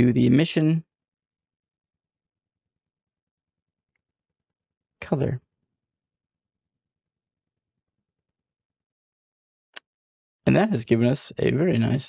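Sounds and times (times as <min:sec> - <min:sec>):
person speaking: 0:00.0 - 0:00.8, 0:05.0 - 0:05.4, 0:10.5 - 0:12.0.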